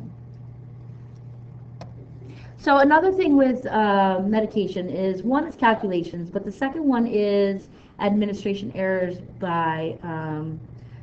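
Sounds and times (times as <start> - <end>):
microphone hum and hiss: 0.0 - 11.0.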